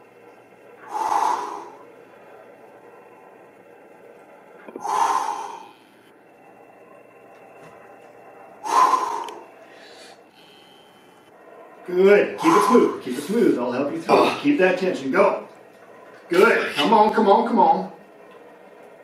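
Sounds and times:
man exhaling forcefully: 0:00.9 - 0:01.8, 0:04.8 - 0:05.7.

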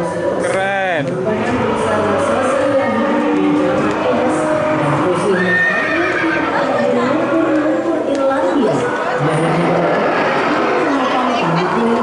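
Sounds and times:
people's voices: 0:00.0 - 0:12.0.

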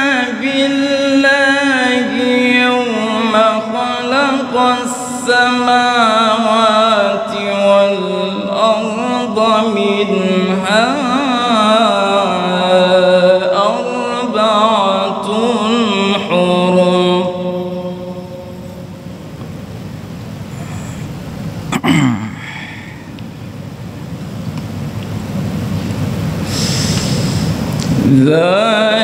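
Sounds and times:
man reciting melodically into microphone: 0:00.0 - 0:19.1, 0:27.8 - 0:29.0
hall noise: 0:00.0 - 0:29.0.

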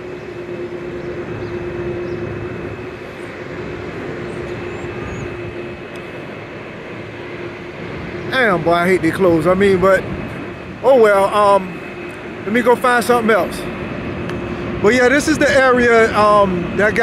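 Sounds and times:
constant low hum: 0:00.0 - 0:17.0
street traffic passing: 0:00.0 - 0:17.0.

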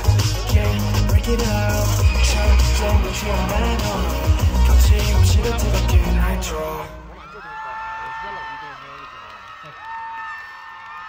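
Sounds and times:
crowd screaming and cheering: 0:00.0 - 0:11.0.

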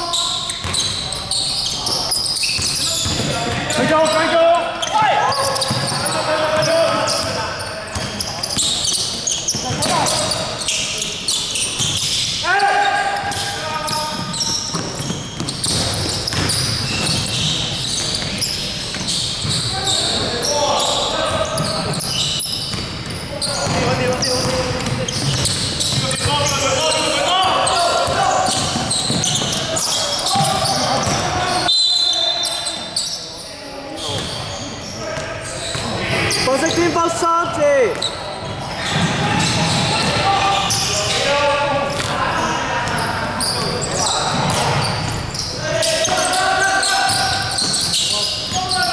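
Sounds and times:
basketball bouncing on hardwood: 0:14.1 - 0:17.2
players shouting: 0:23.2 - 0:33.0, 0:38.7 - 0:48.9.

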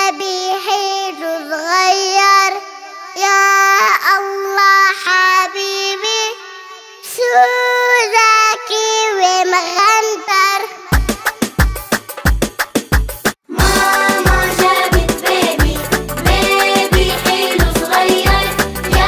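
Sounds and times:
child singing: 0:00.0 - 0:12.0, 0:13.5 - 0:19.0.

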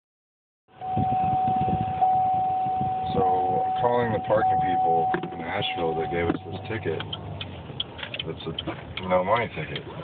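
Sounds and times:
steady high-pitched tone: 0:00.8 - 0:06.6
man speaking: 0:03.1 - 0:07.2.

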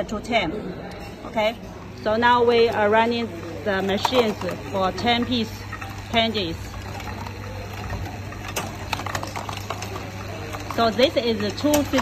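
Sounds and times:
counting machine humming: 0:01.4 - 0:12.0
candies clicking into plastic cups: 0:01.9 - 0:12.0.

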